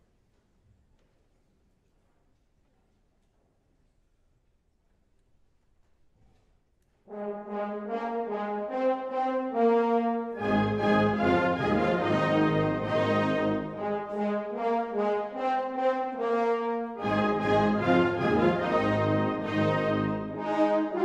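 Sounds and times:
wind band playing: 0:07.1 - 0:21.0.

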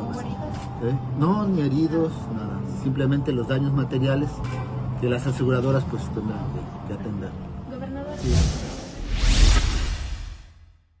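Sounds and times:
swoosh sound effect: 0:08.1 - 0:10.7.

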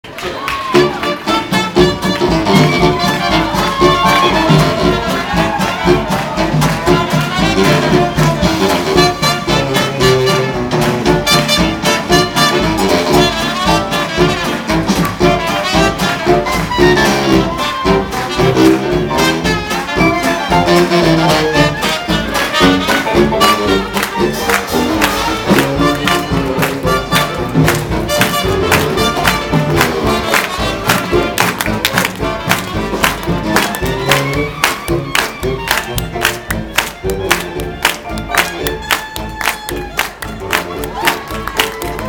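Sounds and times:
jazz band playing swing: 0:00.1 - 0:42.0.

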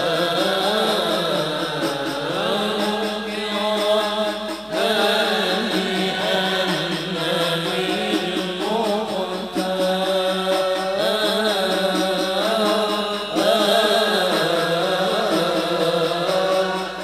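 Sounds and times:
men chanting together: 0:00.0 - 0:17.0.

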